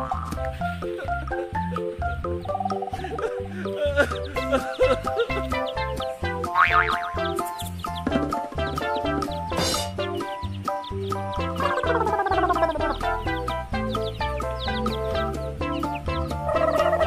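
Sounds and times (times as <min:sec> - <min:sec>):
children's music with bass line: 0:00.0 - 0:17.0.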